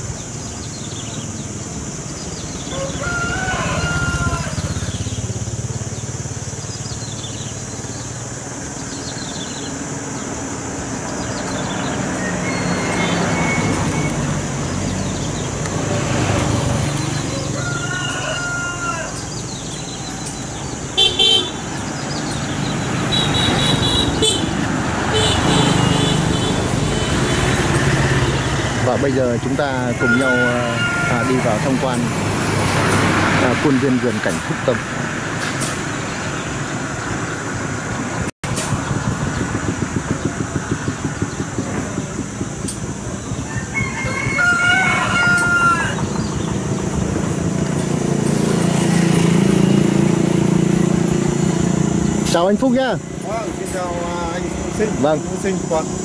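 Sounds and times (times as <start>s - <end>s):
passing traffic rumble: 0.0s - 56.0s
rooster crowing: 2.6s - 5.0s, 12.1s - 14.1s, 17.1s - 20.2s, 29.5s - 32.1s, 43.2s - 46.5s
vehicle horn honking: 21.0s - 21.7s, 23.1s - 27.6s.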